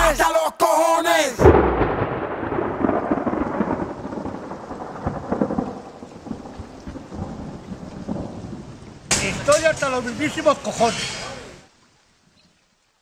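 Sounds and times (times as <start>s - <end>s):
rolling thunder rumble: 1.4s - 10.6s
rain hiss: 1.4s - 13.0s.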